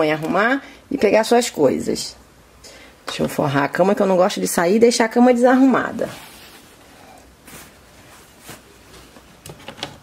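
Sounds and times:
cloth sheet rustling: 0:06.0 - 0:09.3.

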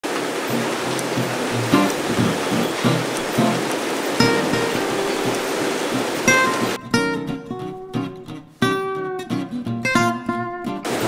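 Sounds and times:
steady machinery noise: 0:00.1 - 0:06.8
plucked acoustic guitar music: 0:00.5 - 0:11.0.

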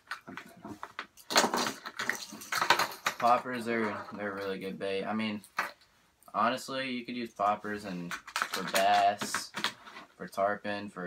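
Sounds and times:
plastic tray clattering: 0:00.0 - 0:04.2, 0:08.1 - 0:09.9.

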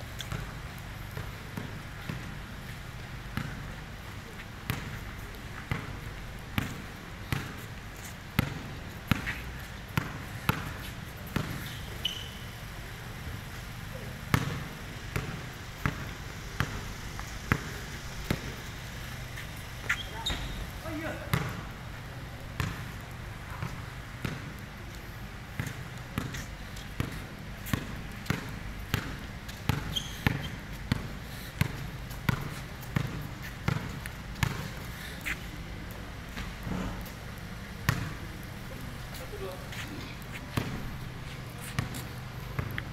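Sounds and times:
basketball bouncing on concrete: 0:00.2 - 0:02.4, 0:03.3 - 0:03.8, 0:04.6 - 0:12.4, 0:13.9 - 0:21.8, 0:22.5 - 0:42.9.

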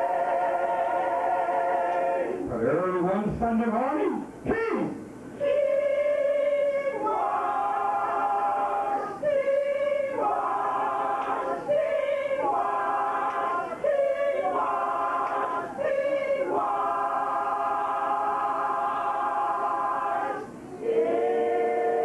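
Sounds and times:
a cappella gospel chorus singing: 0:00.0 - 0:02.5, 0:05.2 - 0:22.0.

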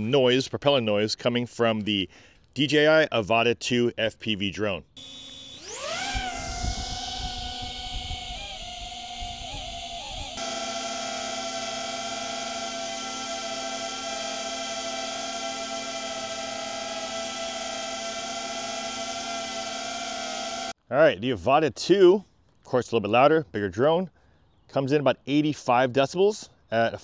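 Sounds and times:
drone propeller whine: 0:05.0 - 0:20.8.

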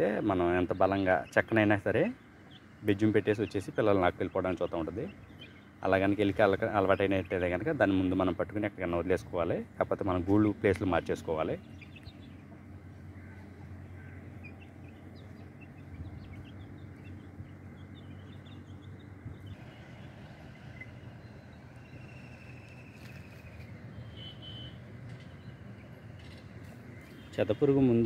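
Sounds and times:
chicks peeping: 0:10.2 - 0:12.7, 0:13.4 - 0:21.0.

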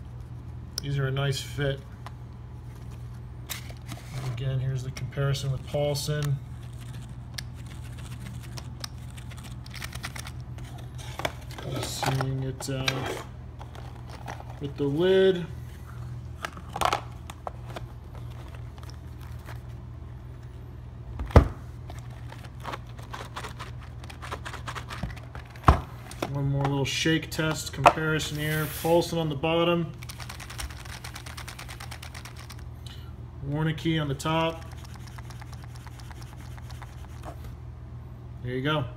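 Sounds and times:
steady low hum: 0:00.0 - 0:38.9
poker chips tapping and scraping: 0:30.0 - 0:32.6, 0:34.5 - 0:37.4.

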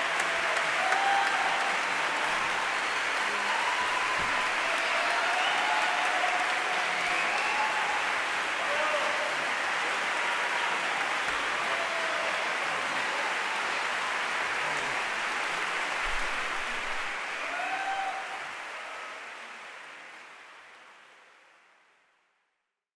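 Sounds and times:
audience applauding: 0:00.0 - 0:21.8.

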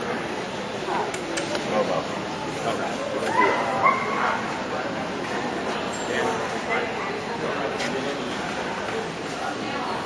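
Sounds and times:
chatter of many voices: 0:00.0 - 0:10.0.

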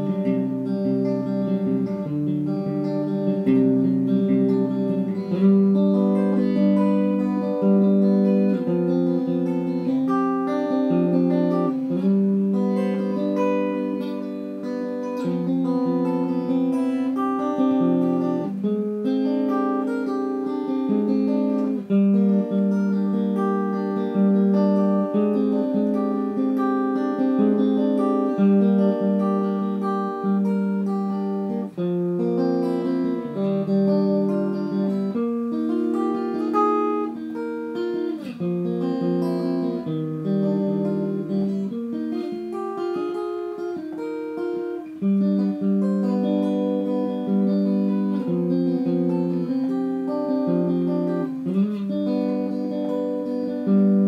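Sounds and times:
solo guitar melody: 0:00.0 - 0:54.0.

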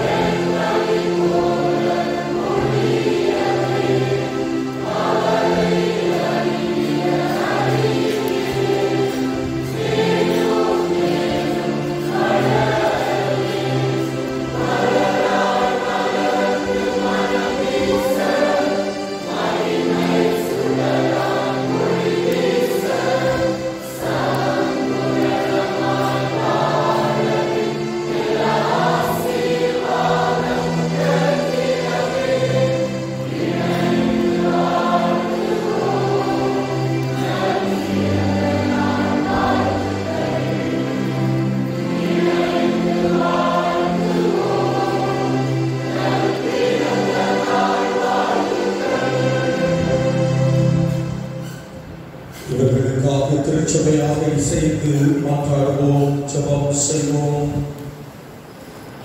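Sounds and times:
women's choir singing a carol: 0:00.0 - 0:59.0.

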